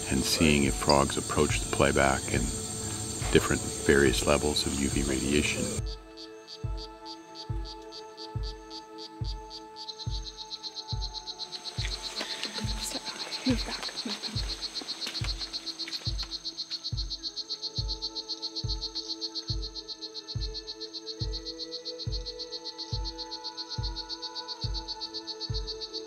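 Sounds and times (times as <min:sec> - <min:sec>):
background music with low beat: 0:00.0 - 0:26.0
high frog chirps from speaker: 0:05.0 - 0:26.0.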